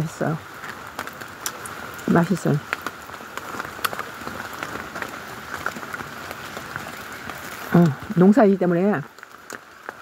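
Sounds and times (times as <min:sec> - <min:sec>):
raindrop ticks: 0:00.0 - 0:10.0
steady rain: 0:00.0 - 0:10.0.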